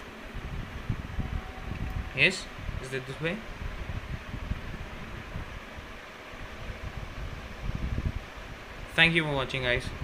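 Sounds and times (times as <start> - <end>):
fan-like background noise: 0.0 - 10.0
low rumbling on microphone: 0.1 - 8.9.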